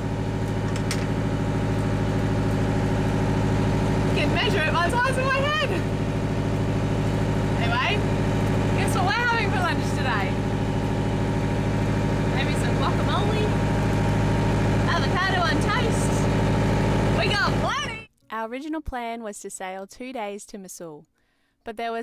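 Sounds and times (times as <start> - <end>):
boat engine droning: 0.0 - 18.1
woman's voice: 4.1 - 5.9, 7.5 - 8.1, 8.8 - 10.4, 12.3 - 13.6, 14.8 - 16.3, 17.2 - 22.0.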